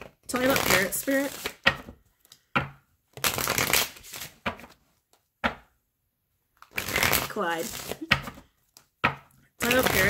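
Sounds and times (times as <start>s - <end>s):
cards shuffled by hand: 0.0s - 2.4s, 3.1s - 4.8s, 6.6s - 8.9s, 9.6s - 10.0s.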